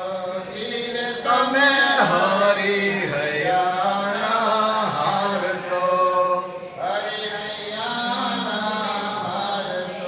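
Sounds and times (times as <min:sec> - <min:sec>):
person singing devotional chant: 0:00.0 - 0:10.0.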